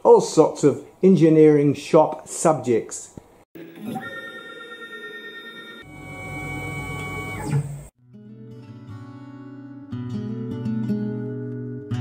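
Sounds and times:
drive motors whining: 0:03.6 - 0:07.9.

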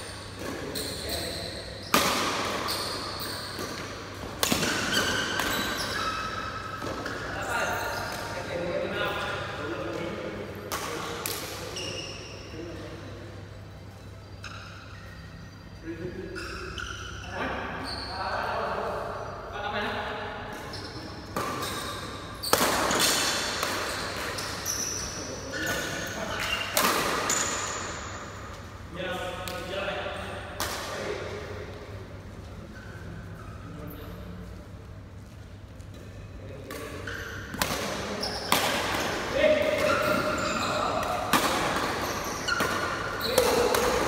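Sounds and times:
shoe squeaks on court floor: 0:00.0 - 0:08.5, 0:11.6 - 0:12.6, 0:14.0 - 0:19.4, 0:20.5 - 0:28.4, 0:32.6 - 0:34.3, 0:36.8 - 0:44.0
racket striking shuttlecock: 0:03.6 - 0:05.8, 0:41.0 - 0:44.0.

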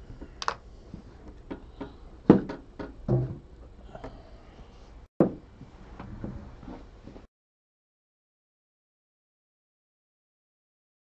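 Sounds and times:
objects clicking on a table: 0:00.4 - 0:00.6.

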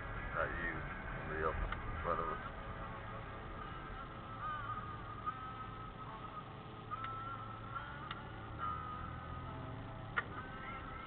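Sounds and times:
car rumbling inside cabin: 0:00.0 - 0:11.0.

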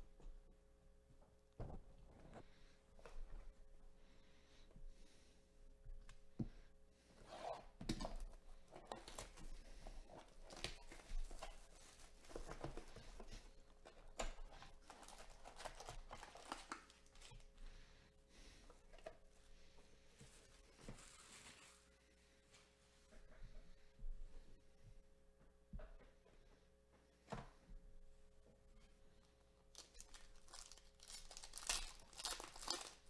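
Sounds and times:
cardboard box and packs handled: 0:07.9 - 0:17.5, 0:29.7 - 0:33.0
plastic wrap crinkling: 0:08.7 - 0:17.5, 0:29.7 - 0:33.0.

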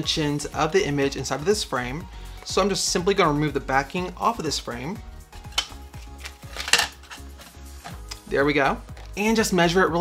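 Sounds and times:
background music: 0:00.0 - 0:10.0
picture frame sharp clicks: 0:05.5 - 0:08.3.

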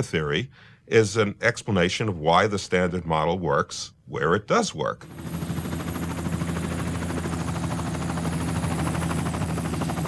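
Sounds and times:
engine drone: 0:05.0 - 0:10.0
helicopter rotor chop: 0:05.0 - 0:10.0.

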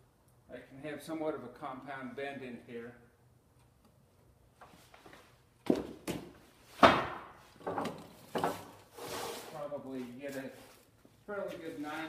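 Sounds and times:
rustling: 0:08.1 - 0:12.0.

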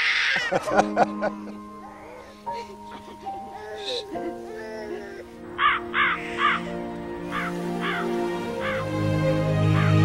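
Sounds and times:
crow cawing: 0:00.0 - 0:00.6, 0:04.7 - 0:08.9, 0:09.7 - 0:10.0
slow soundtrack music: 0:00.3 - 0:10.0.

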